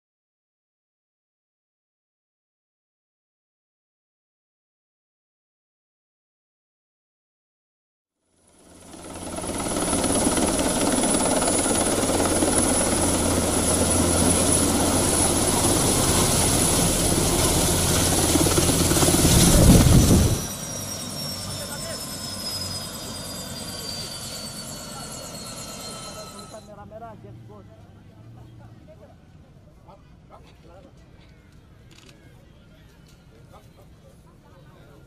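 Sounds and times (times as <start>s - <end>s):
helicopter running: 8.4s - 26.8s.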